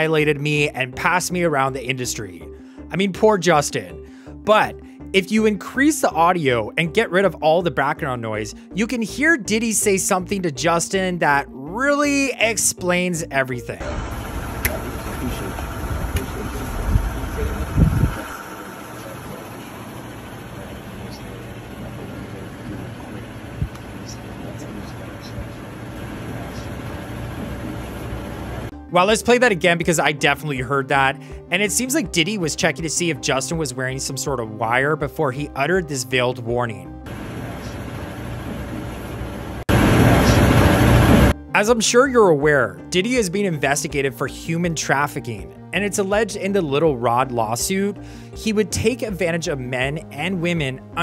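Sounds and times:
low outdoor rumble: 0:13.8 - 0:28.7.

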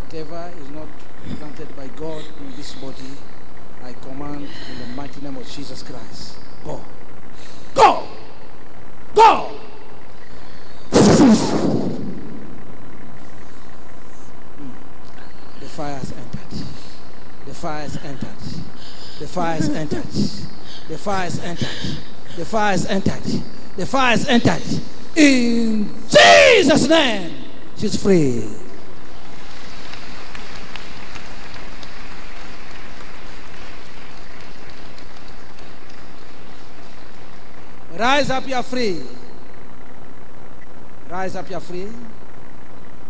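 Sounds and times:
steady hiss-like noise: 0:00.0 - 0:43.0
distorted shouted cry into microphone: 0:07.8 - 0:08.4, 0:09.2 - 0:09.9, 0:26.0 - 0:27.6.

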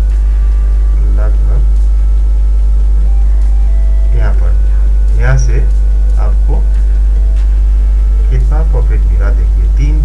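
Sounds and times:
loud steady low hum: 0:00.0 - 0:10.0
soft background music: 0:00.0 - 0:10.0.

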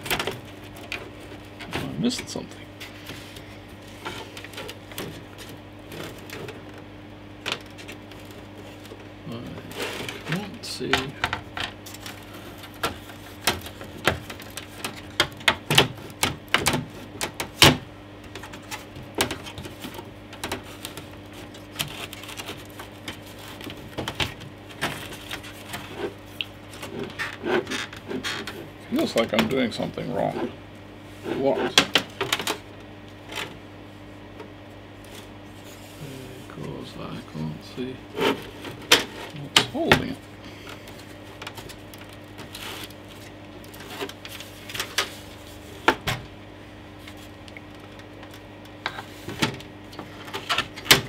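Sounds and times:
steady low hum: 0:00.0 - 0:51.0.

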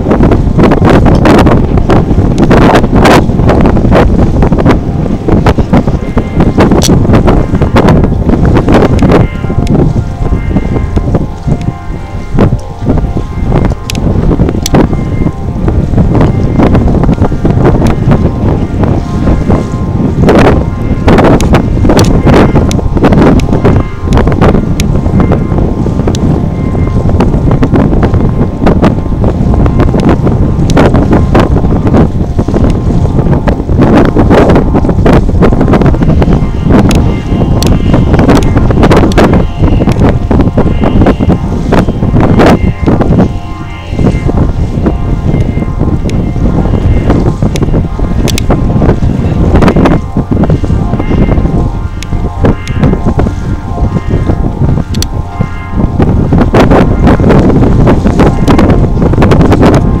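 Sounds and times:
wind buffeting microphone: 0:00.0 - 1:00.0.

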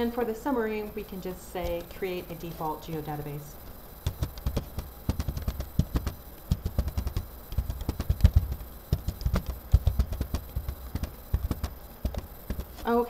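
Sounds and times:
computer keyboard typing: 0:01.6 - 0:03.2, 0:04.0 - 0:13.0.

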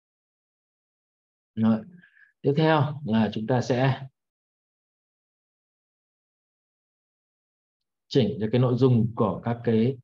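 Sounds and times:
man speaking: 0:01.6 - 0:04.2, 0:08.1 - 0:10.0.

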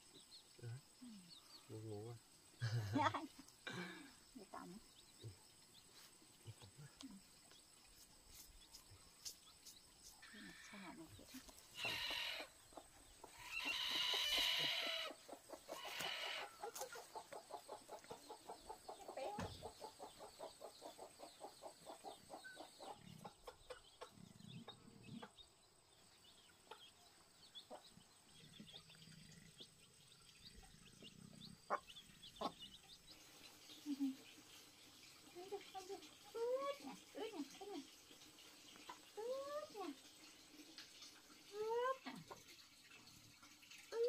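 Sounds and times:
chickens calling loudly: 0:10.6 - 0:25.4
chickens clucking: 0:11.1 - 0:25.5, 0:26.5 - 0:29.4, 0:30.6 - 0:34.7.

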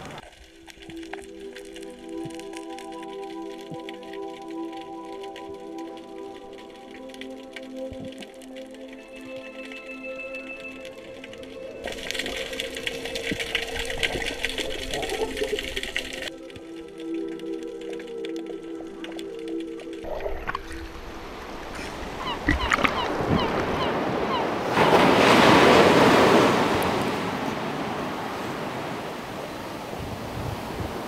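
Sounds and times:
background music with held notes: 0:00.3 - 0:27.0.

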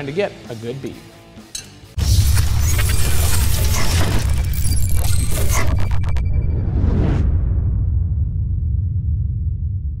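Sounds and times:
deep low rumble: 0:02.4 - 0:10.0.

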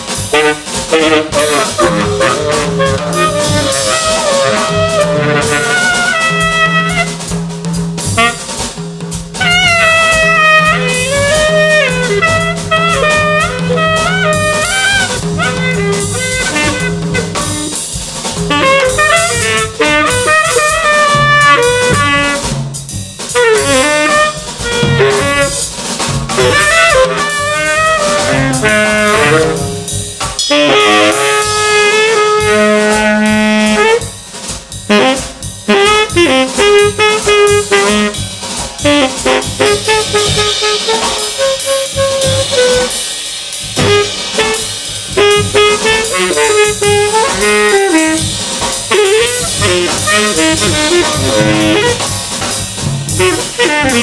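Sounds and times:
drum kit playing: 0:00.0 - 0:54.0
jazz tenor saxophone: 0:00.0 - 0:54.0.

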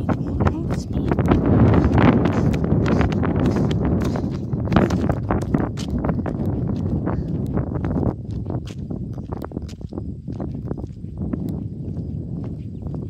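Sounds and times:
footsteps on asphalt: 0:00.0 - 0:13.0
low microphone rumble: 0:00.0 - 0:13.0.

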